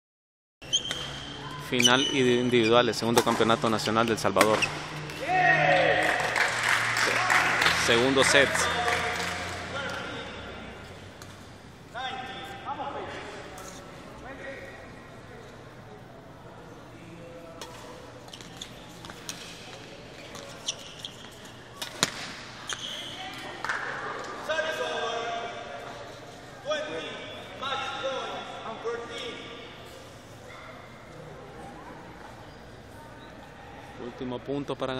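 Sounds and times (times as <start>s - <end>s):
crowd and player voices: 0.6s - 34.9s.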